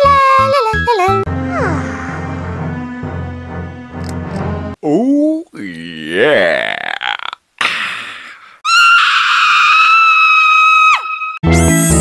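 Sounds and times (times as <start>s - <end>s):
high-pitched cartoon scream: 8.6s - 11.9s.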